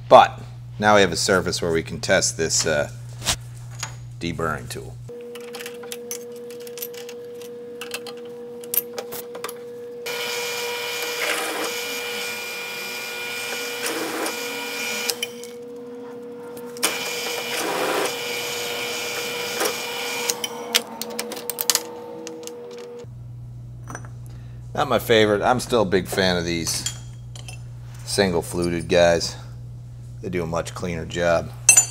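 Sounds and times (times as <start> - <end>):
drill press hum: 10.0 - 15.6, 16.7 - 23.2.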